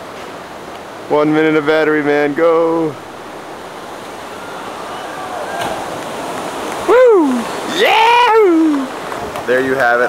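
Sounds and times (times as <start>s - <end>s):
surf breaking against rocks: 2.1s - 10.0s
faint voices: 4.1s - 9.7s.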